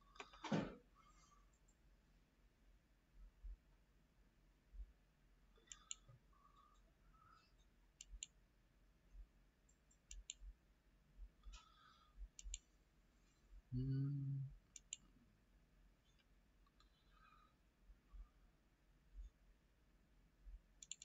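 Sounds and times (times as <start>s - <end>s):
computer mouse clicking: 5.6s - 6.8s, 7.6s - 8.4s, 9.7s - 10.4s, 12.4s - 12.7s, 14.7s - 15.0s, 16.1s - 17.2s, 20.8s - 21.0s.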